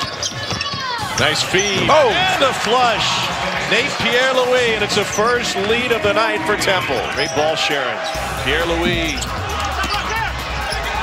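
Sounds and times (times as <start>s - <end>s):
arena crowd rumble: 0.0s - 11.0s.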